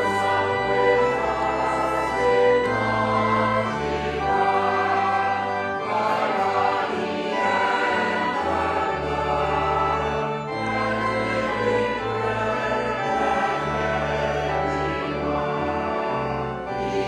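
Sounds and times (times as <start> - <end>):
choir and congregation singing hymn: 0.0 - 17.0
organ bass notes: 0.0 - 17.0.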